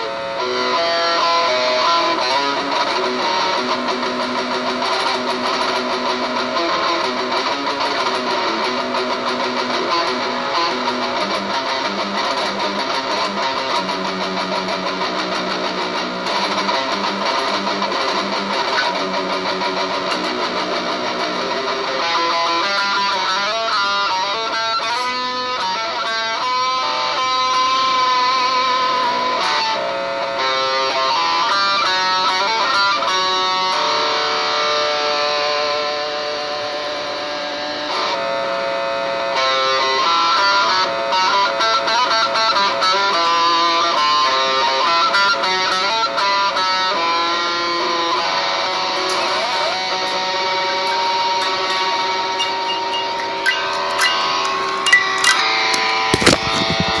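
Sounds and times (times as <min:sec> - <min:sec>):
electric guitar melodic lines: 0:00.0 - 0:57.0.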